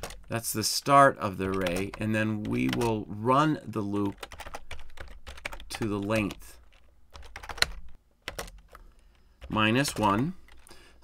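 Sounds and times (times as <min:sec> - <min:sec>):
typing on computer keyboard: 0:00.0 - 0:00.3, 0:01.4 - 0:03.0, 0:04.1 - 0:08.8, 0:09.4 - 0:10.7.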